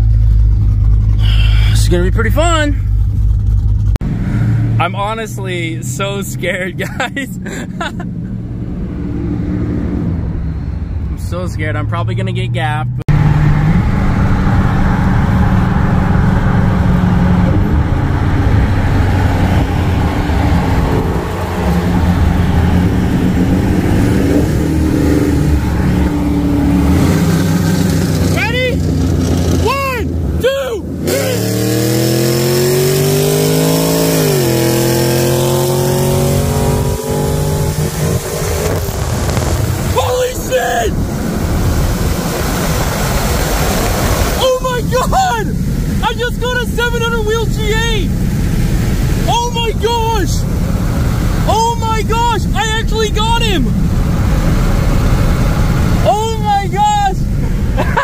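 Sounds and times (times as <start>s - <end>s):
car engine revving through gears: 8.1s - 11.0s, 11.6s - 40.0s.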